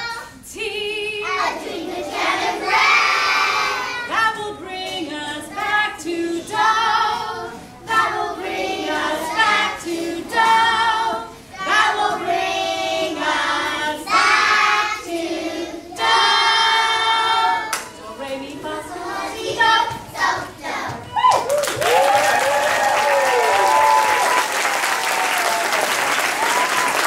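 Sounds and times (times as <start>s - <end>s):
children singing together: 0.0s - 21.1s
woman singing over a microphone: 0.4s - 1.4s, 4.1s - 12.4s, 16.0s - 20.0s.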